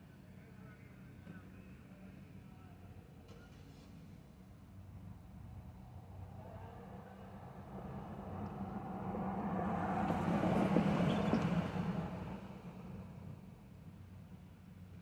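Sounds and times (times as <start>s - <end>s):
low engine hum: 3.9s - 15.0s
car driving past: 6.0s - 13.2s.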